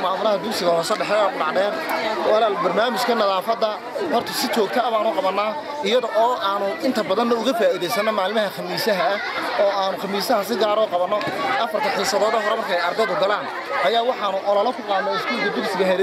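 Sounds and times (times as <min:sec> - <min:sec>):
crowd chatter: 0:00.0 - 0:16.0
man talking: 0:00.0 - 0:16.0.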